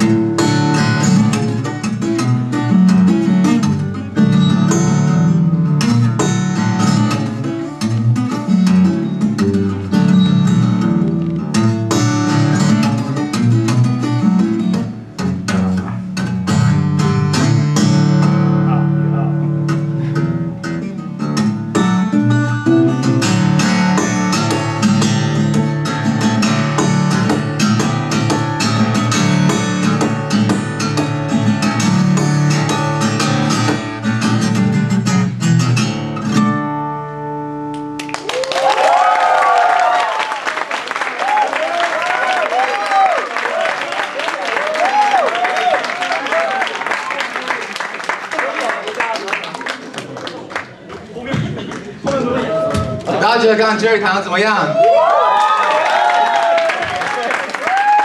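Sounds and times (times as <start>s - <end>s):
fingerstyle acoustic guitar: 0.0s - 38.0s.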